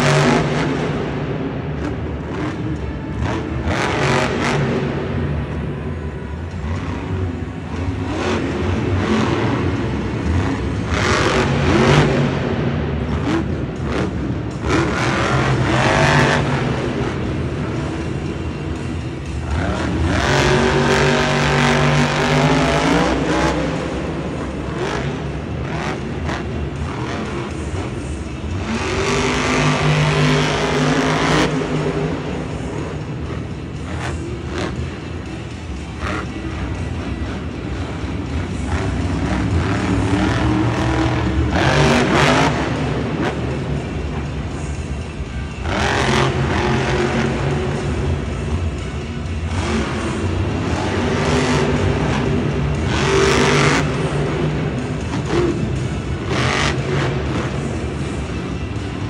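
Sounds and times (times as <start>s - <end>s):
truck engine revving hard: 0.0s - 59.0s.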